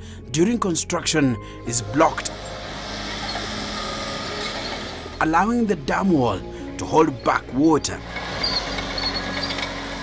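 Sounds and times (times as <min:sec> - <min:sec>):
excavator engine and hydraulics: 0:01.2 - 0:10.0.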